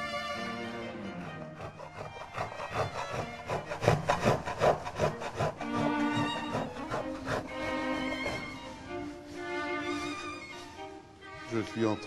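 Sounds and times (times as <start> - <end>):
music: 0.0 - 12.0
hand tool strokes on wood: 1.0 - 11.0.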